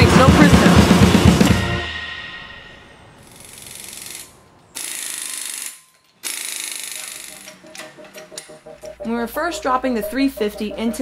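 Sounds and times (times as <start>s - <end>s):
background music: 0.0s - 2.9s, 7.4s - 11.0s.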